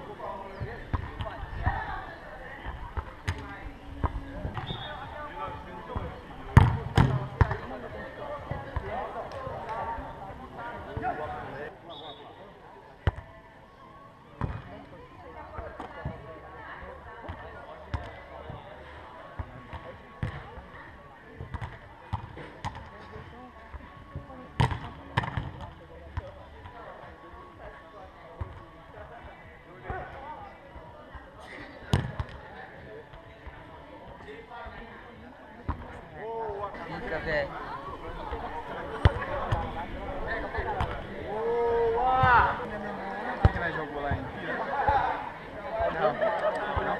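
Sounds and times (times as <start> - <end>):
ball struck sharp thumps: 6.0 - 7.6.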